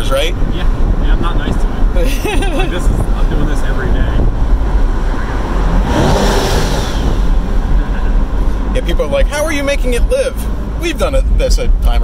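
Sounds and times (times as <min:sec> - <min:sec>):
car engine running: 0:00.0 - 0:12.0
road noise: 0:00.0 - 0:12.0.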